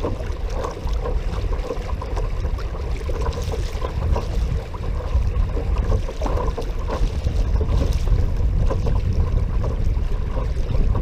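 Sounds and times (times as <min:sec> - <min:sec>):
water splashing and rushing: 0:00.0 - 0:11.0
wind buffeting microphone: 0:00.0 - 0:11.0.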